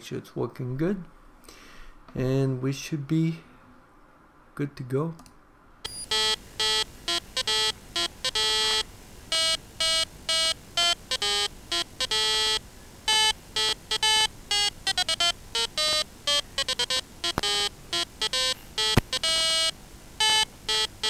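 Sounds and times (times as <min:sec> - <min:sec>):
electronic beeps at changing pitches: 0:05.9 - 0:21.0.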